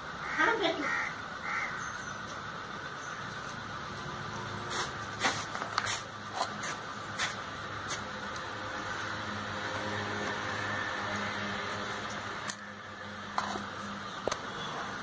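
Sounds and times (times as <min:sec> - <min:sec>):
crow cawing: 0:00.2 - 0:02.0.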